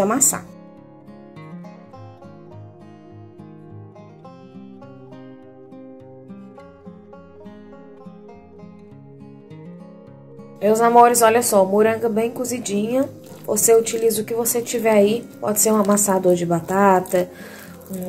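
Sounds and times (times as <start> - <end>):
narration: 0.0 - 0.5, 10.6 - 18.0
plucked guitar background music: 0.0 - 18.0.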